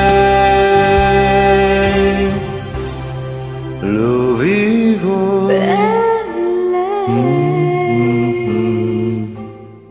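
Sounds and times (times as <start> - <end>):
karaoke backing track chord: 0.0 - 9.9
woman singing a held note: 5.5 - 7.3.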